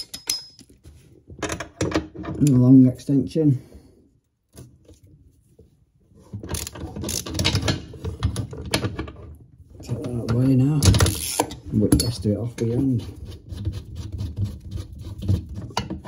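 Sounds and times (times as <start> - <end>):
ratchet handle clicking: 11.1 - 11.5.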